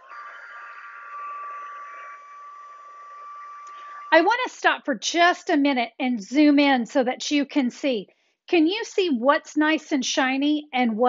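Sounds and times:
heat gun blowing: 0:00.0 - 0:04.2.

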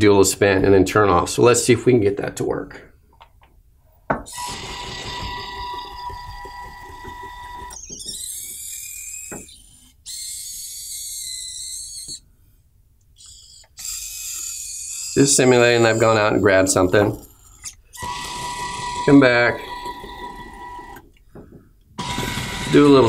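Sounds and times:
gear motors whining: 0:04.3 - 0:12.2, 0:13.2 - 0:21.2, 0:22.0 - 0:23.0
servo motors whirring: 0:04.3 - 0:12.2, 0:13.2 - 0:21.0.

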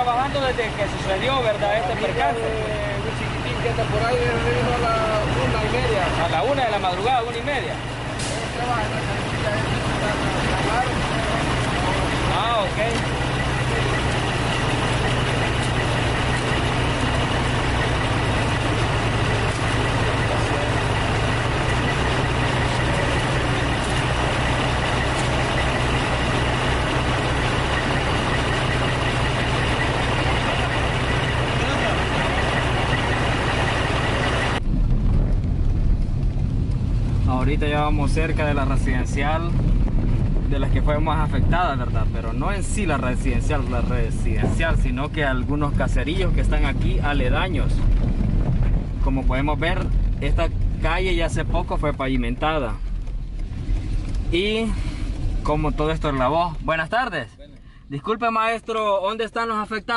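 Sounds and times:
people talking: 0:00.0 - 0:17.4, 0:19.2 - 0:24.4, 0:29.4 - 0:33.1, 0:37.3 - 0:39.6, 0:40.4 - 0:47.8, 0:49.1 - 0:52.8, 0:54.3 - 0:54.9, 0:55.5 - 0:59.9
car driving rumble inside cabin: 0:00.0 - 0:59.0
truck engine idling: 0:00.0 - 0:59.9.

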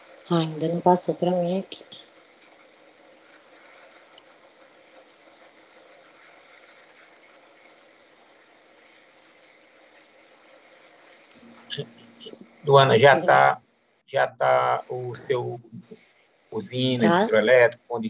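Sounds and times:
faint microphone hiss: 0:00.0 - 0:18.0.

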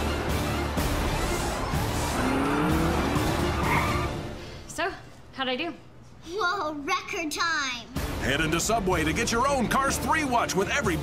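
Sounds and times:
background music: 0:00.0 - 0:05.8, 0:07.0 - 0:11.0
tyres squealing: 0:01.8 - 0:04.3.

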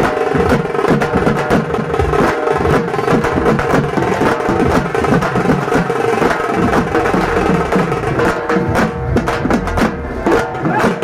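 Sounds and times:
drums beaten in fast rhythm: 0:00.0 - 0:11.0.

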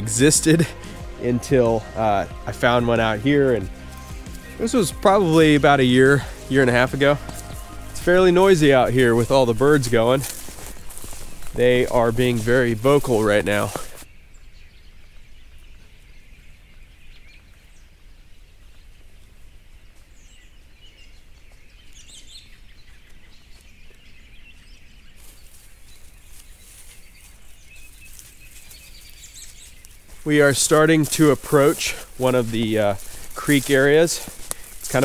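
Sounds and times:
wild birds chirping and calling: 0:00.0 - 0:35.0.

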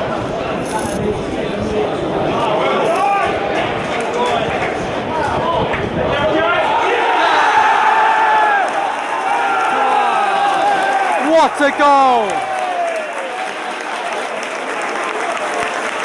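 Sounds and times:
stadium crowd shouting: 0:01.6 - 0:16.0
crowd cheering: 0:02.3 - 0:16.0.

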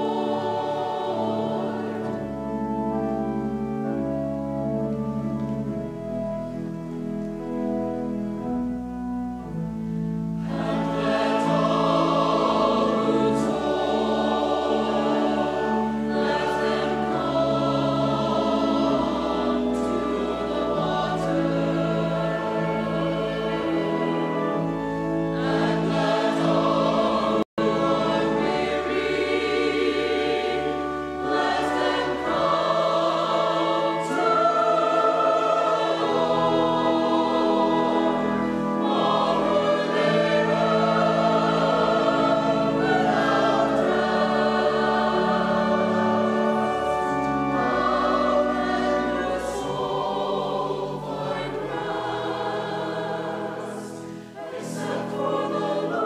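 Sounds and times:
choir singing in parts: 0:00.0 - 0:04.4, 0:10.3 - 0:56.0.

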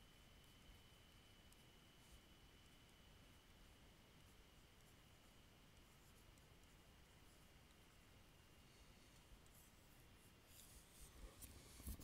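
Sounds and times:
stylus scratching on tablet screen: 0:00.2 - 0:12.0.

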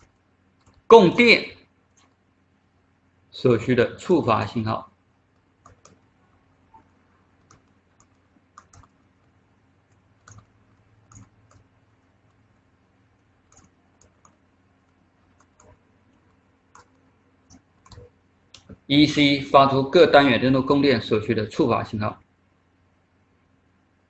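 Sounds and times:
faint low hum: 0:00.0 - 0:24.0.

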